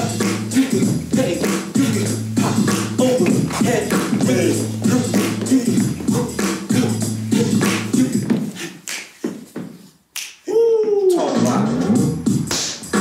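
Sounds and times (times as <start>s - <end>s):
beatbox vocal beat: 0.0s - 13.0s
hip-hop dance track: 0.0s - 13.0s.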